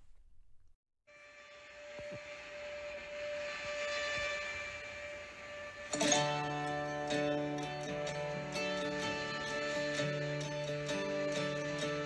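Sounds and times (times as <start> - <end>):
humming tone: 1.1 - 12.0
steady hiss: 1.5 - 10.4.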